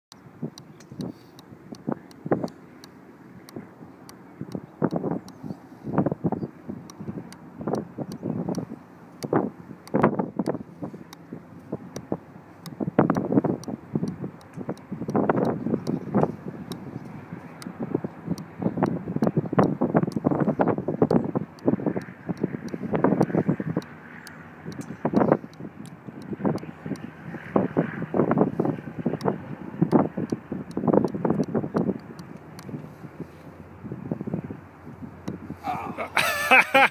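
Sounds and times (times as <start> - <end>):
wind buffeting microphone: 0.1 - 36.4.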